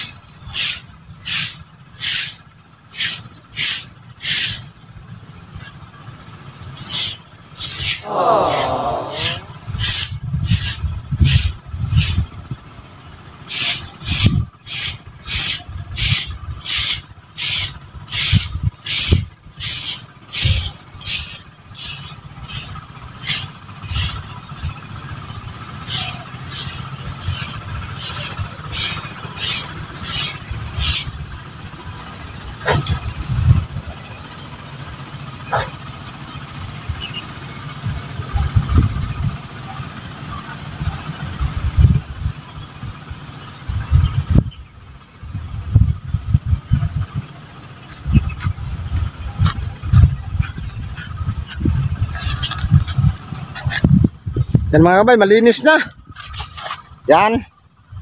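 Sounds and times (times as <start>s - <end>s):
broom sweeping leaves on dirt: 0.0s - 4.7s, 6.8s - 12.3s, 13.5s - 31.2s, 48.4s - 53.9s, 56.1s - 57.0s.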